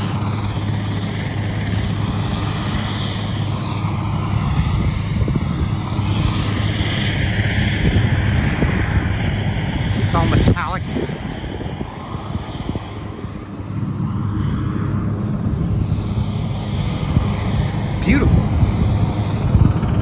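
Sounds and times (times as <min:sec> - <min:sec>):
aircraft engine droning: 0:00.0 - 0:20.0.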